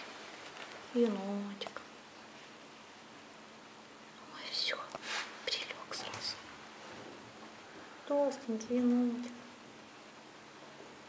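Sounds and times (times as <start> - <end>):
soft breathy whispering: 4.2 - 6.4.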